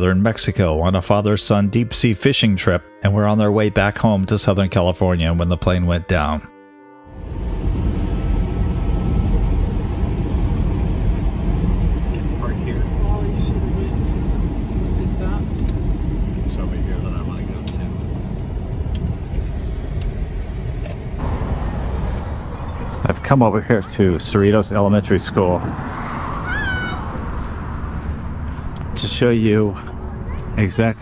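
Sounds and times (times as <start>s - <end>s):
car engine and tyre rumble: 7.1s - 31.0s.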